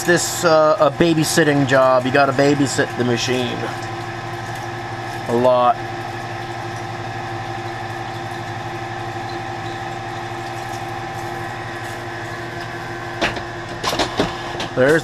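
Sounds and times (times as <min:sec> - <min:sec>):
lathe humming: 0:00.0 - 0:15.0.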